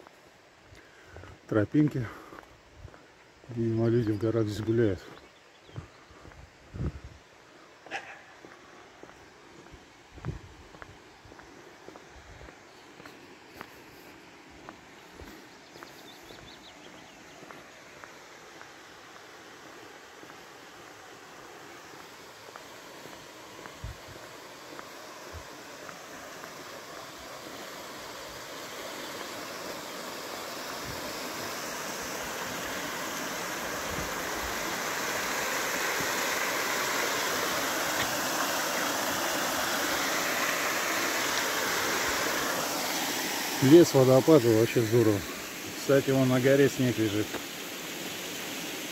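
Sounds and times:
light footsteps on road: 0.0 - 43.6, 47.2 - 48.6
stream rushing over rocks: 7.4 - 48.9.

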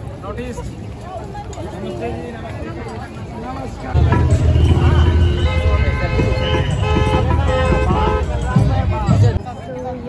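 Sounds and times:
loud low traffic rumble: 0.0 - 10.0
people talking: 0.0 - 10.0
vehicle horns honking: 4.0 - 8.9.

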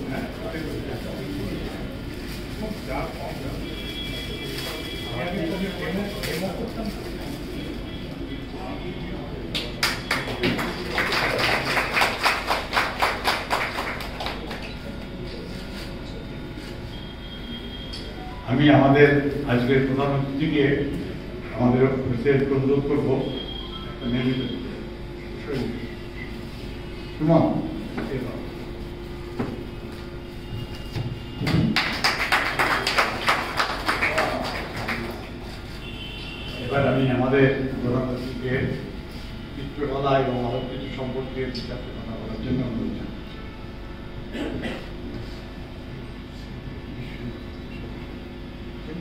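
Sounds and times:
low murmuring voices: 0.0 - 18.2
audience clapping: 9.5 - 15.2, 31.4 - 35.6.

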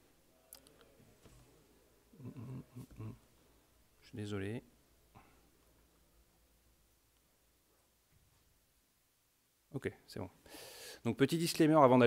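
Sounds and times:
man muttering: 2.1 - 3.3.

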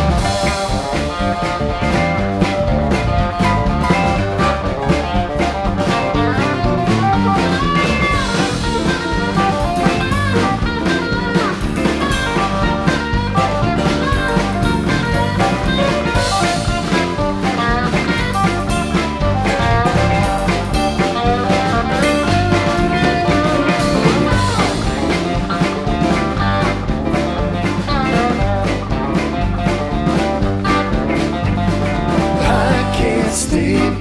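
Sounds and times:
lead guitar bending notes: 0.0 - 34.0
rock band playing: 0.0 - 34.0.

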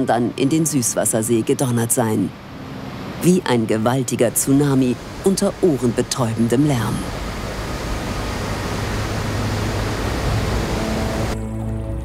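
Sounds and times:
large waterfall rushing: 0.0 - 11.4
quiet music of long held notes: 0.0 - 12.0.

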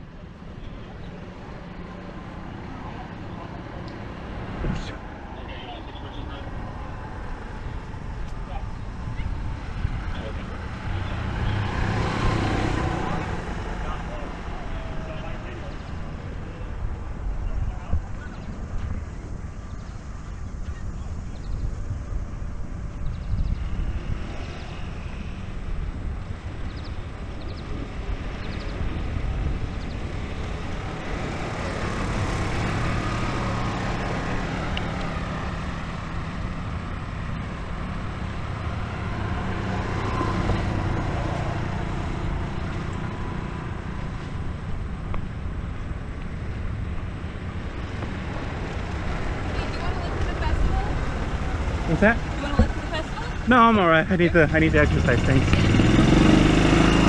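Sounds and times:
vehicle engine hum: 0.0 - 57.0.

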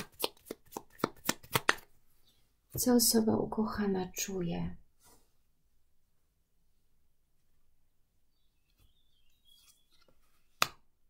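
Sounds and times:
cards being shuffled: 0.0 - 1.9.

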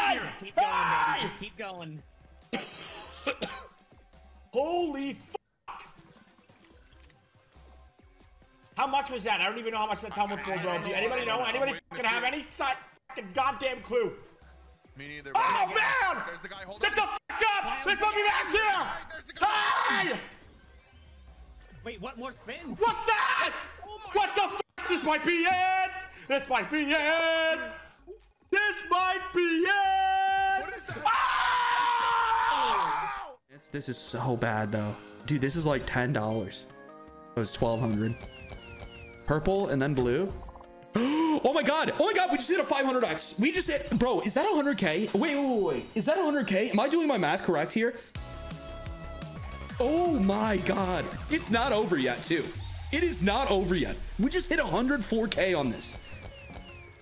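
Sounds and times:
man shouting excitedly: 0.0 - 1.7, 4.5 - 5.8, 8.8 - 14.1, 15.2 - 20.4, 22.6 - 27.9, 28.5 - 33.4, 49.8 - 52.3
man screaming with excitement: 29.6 - 33.4
slot machine game sounds: 33.9 - 47.0.

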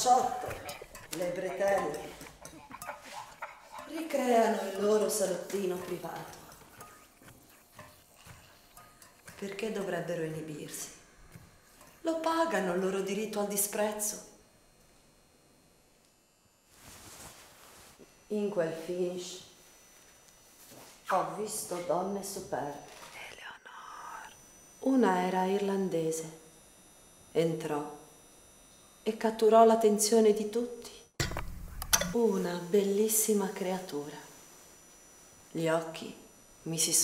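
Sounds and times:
woman speaking: 0.0 - 6.6, 9.3 - 11.0, 12.0 - 14.4, 18.3 - 19.5, 21.1 - 26.4, 27.4 - 28.0, 29.1 - 31.1, 32.0 - 34.4, 35.5 - 37.0
woman whispering: 23.0 - 24.4.

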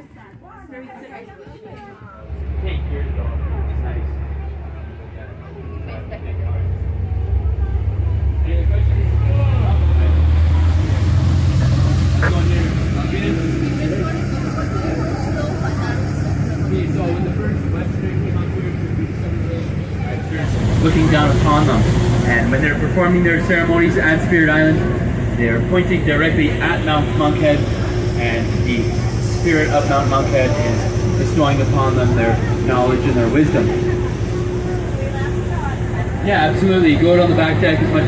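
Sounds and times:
boat engine droning: 0.0 - 38.0
indistinct voices: 0.0 - 38.0.

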